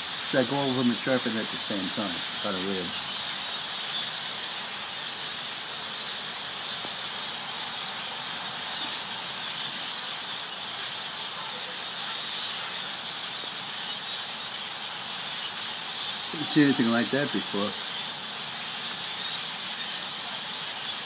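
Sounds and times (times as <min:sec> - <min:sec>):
flock of birds chirping: 0:00.0 - 0:21.0.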